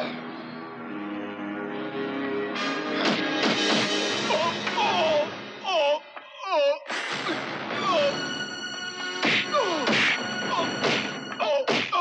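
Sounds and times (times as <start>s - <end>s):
punch sound effects: 3.0s - 4.6s, 6.9s - 7.8s, 9.2s - 10.2s, 10.8s - 12.0s.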